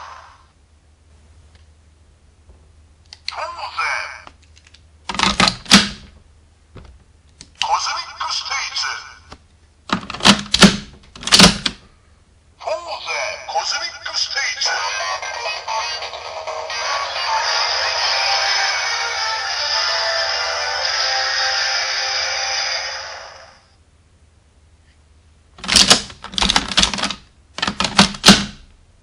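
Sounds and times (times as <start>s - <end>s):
recorded voice announcements from toy: 3.2s - 4.4s, 7.6s - 9.3s, 12.6s - 19.9s
electronic toy music: 14.7s - 23.6s.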